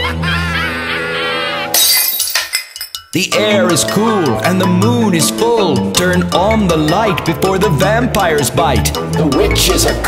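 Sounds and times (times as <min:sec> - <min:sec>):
glass shattering: 0:01.7 - 0:03.1
backing music: 0:03.0 - 0:10.0.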